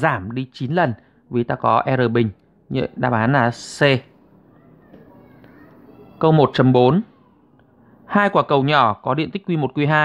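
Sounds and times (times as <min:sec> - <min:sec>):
faint distant voices: 0:00.0 - 0:10.0
low room noise: 0:00.0 - 0:10.0.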